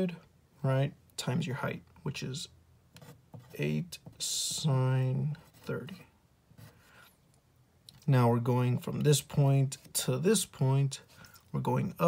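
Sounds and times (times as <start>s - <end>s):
pencil scratching on paper: 3.0s - 4.7s, 5.3s - 7.0s.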